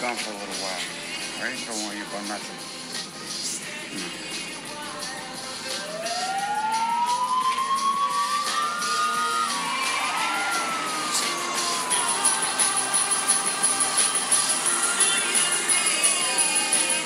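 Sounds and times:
background music: 0.0s - 17.0s
police sirens wailing: 5.6s - 17.0s.

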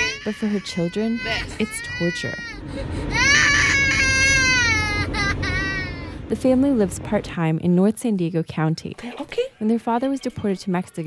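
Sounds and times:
child whining wail: 0.0s - 6.2s.

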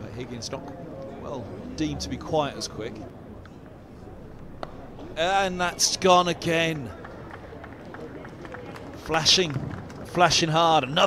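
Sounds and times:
open-air ambience: 0.0s - 11.0s
crowd applause: 5.3s - 11.0s.

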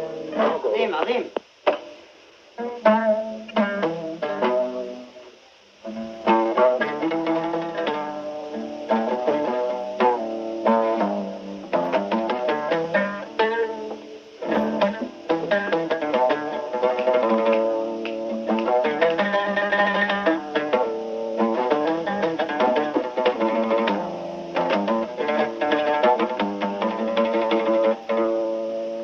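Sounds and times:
oud plucked notes: 0.0s - 29.0s.

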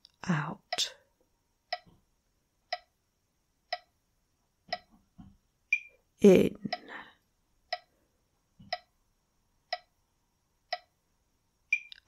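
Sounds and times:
metronome ticking: 2.7s - 2.9s, 3.7s - 4.0s, 5.7s - 6.0s, 7.7s - 7.9s, 9.7s - 9.9s, 10.7s - 11.0s.

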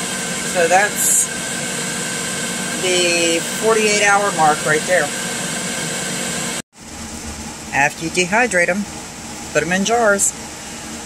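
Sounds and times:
food dehydrator fan running: 0.0s - 11.0s.

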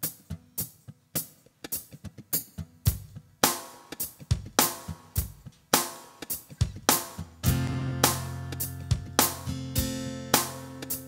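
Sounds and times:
reggae drum beat: 0.0s - 11.0s
acoustic guitar chord: 7.4s - 10.9s
sustained low notes: 7.5s - 10.3s.

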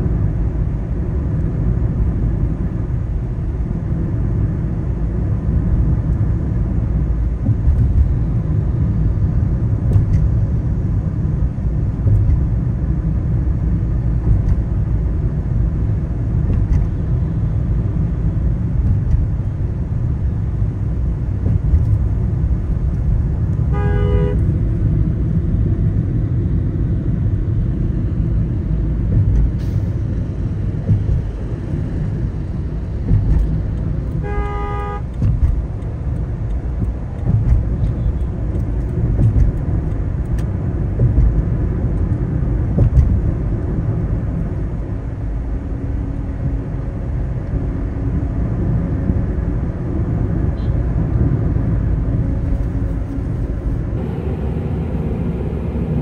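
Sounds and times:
car road and engine noise: 0.0s - 56.0s
vehicle horn honks: 23.7s - 24.5s, 34.2s - 35.1s.

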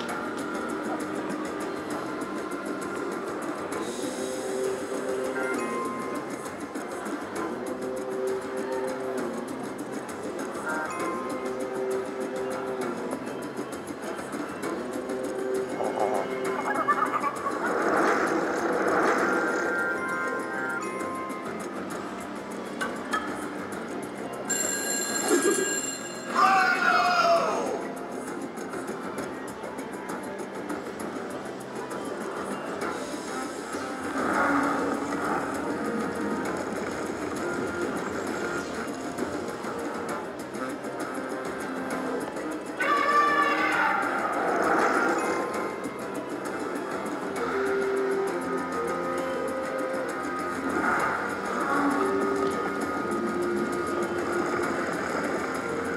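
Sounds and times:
casino hubbub: 0.0s - 55.9s
slot machine music: 0.0s - 55.9s
slot machine reel-spin sounds: 0.1s - 26.7s, 27.8s - 55.9s
slot machine chiming effects: 15.2s - 28.2s
slot machine bonus music: 24.4s - 27.1s.

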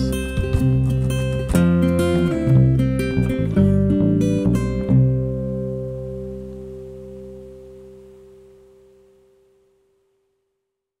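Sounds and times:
bass guitar ringing: 0.0s - 9.8s
acoustic guitar chord ringing: 0.0s - 10.4s.

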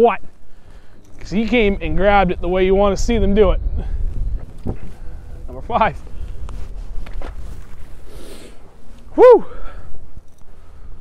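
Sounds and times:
wind rumbling on microphone: 0.0s - 11.0s
light clicks: 0.9s - 1.6s, 10.2s - 10.6s.

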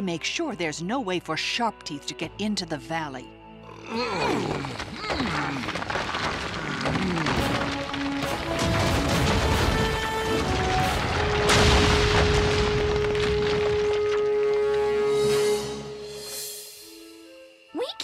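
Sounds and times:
rocks crashing and tumbling: 4.2s - 15.7s
rumbling: 4.2s - 16.0s
orchestral music: 5.8s - 18.0s.

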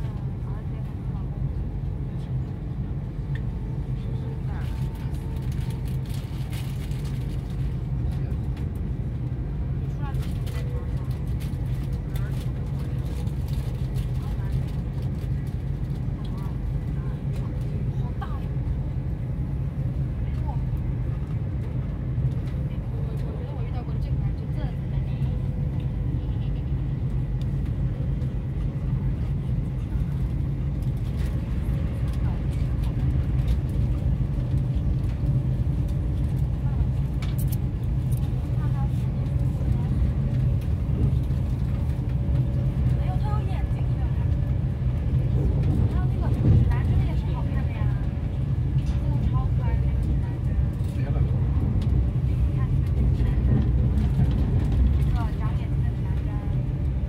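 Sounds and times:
vehicle rumble from inside: 0.0s - 57.0s.

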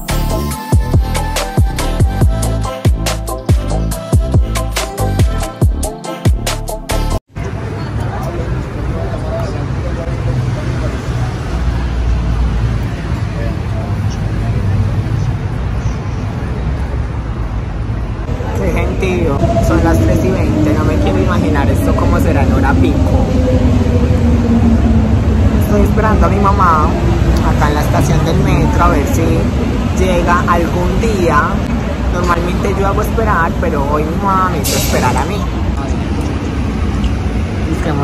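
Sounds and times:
steady low rumble: 17.1s - 38.0s
woman talking: 18.5s - 23.2s, 25.6s - 35.5s, 37.6s - 38.0s.

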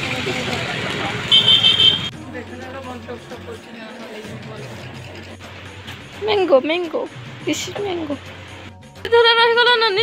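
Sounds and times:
street traffic noise: 0.0s - 10.0s
vehicle horn honk: 1.3s - 2.1s.

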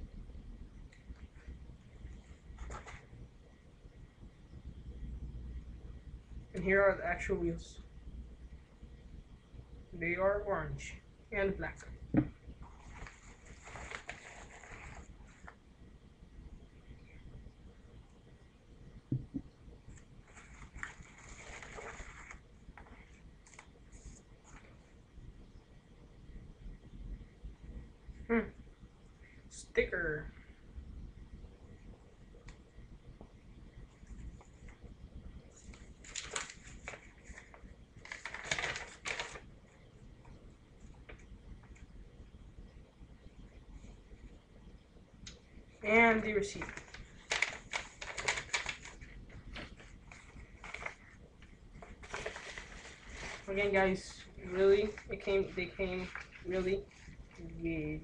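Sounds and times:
packaging rustling and handling: 2.5s - 3.2s, 12.6s - 15.6s, 19.9s - 24.8s, 35.6s - 39.5s, 46.3s - 51.1s, 51.8s - 57.1s.

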